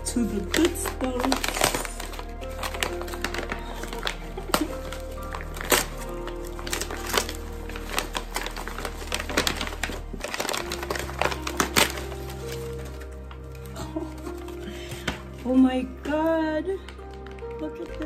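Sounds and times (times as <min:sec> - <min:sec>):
background music with held chords: 0:00.0 - 0:18.0
paper wrapping crackling: 0:00.0 - 0:18.0.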